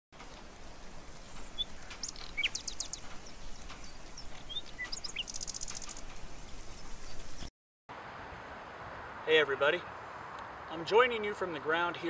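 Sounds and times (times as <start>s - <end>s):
small birds chirping: 0.2s - 7.5s
outdoor background hiss: 0.2s - 12.0s
bird trill: 1.1s - 7.5s.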